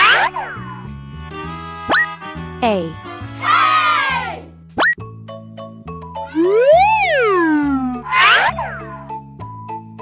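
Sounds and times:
cartoon falling boing glide: 0:00.0 - 0:00.6, 0:06.3 - 0:09.0
cartoon rising swoop: 0:00.0 - 0:00.6, 0:06.3 - 0:09.1
children's background music: 0:00.0 - 0:10.0.

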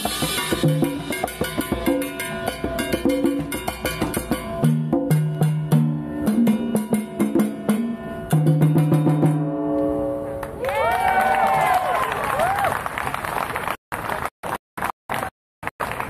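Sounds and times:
drums and clicking percussion: 0:00.0 - 0:09.5.

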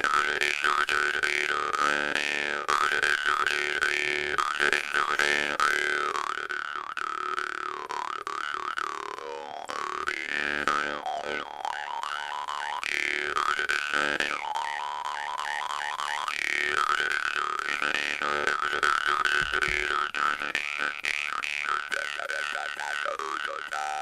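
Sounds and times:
bass jaw harp twanging: 0:07.9 - 0:24.0.

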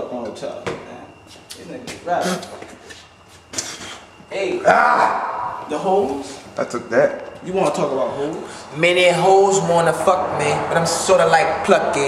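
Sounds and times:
men's voices: 0:03.6 - 0:12.0.

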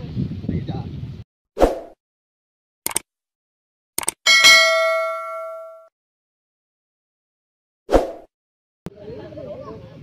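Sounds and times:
quick clicks: 0:02.8 - 0:03.1, 0:04.0 - 0:04.2
bell ding: 0:04.3 - 0:05.9.

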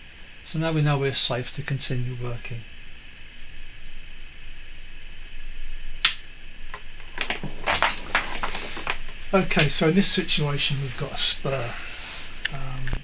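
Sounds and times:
high-pitched tester beep: 0:00.0 - 0:06.2
sharp click: 0:06.0 - 0:06.2
rustling and handling noises: 0:06.7 - 0:09.8.

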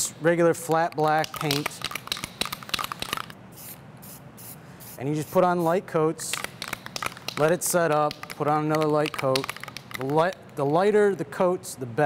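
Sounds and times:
spray can ball rattling: 0:00.9 - 0:10.7
spray paint hiss: 0:01.2 - 0:09.8.

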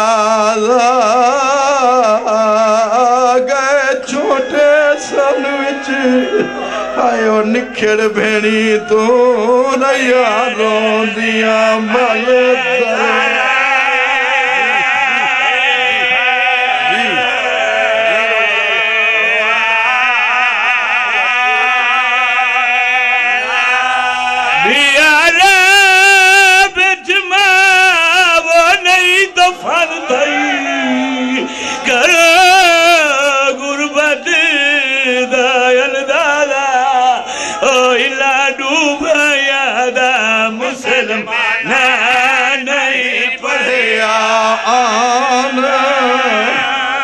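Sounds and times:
man chanting a lament: 0:00.0 - 0:47.0.

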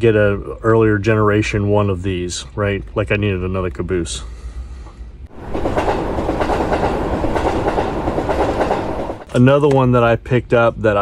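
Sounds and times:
train rumbling on rails: 0:05.3 - 0:09.3.

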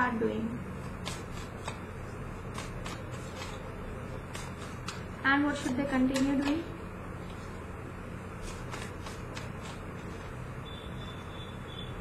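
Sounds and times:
cards being shuffled: 0:00.8 - 0:01.9, 0:02.5 - 0:05.1, 0:08.4 - 0:10.3.

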